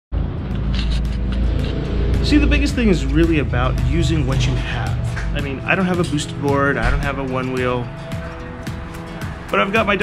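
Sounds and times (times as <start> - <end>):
background music with deep bass: 0.2 - 10.0.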